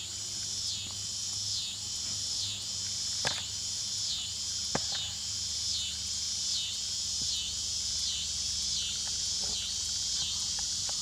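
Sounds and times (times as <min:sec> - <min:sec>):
insects chorus pulsing: 0:00.0 - 0:11.0.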